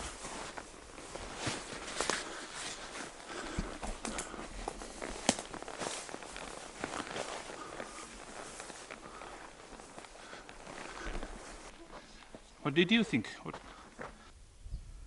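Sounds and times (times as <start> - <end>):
footsteps through tall grass: 0.0 - 12.8
vegetation rustling: 0.0 - 12.8.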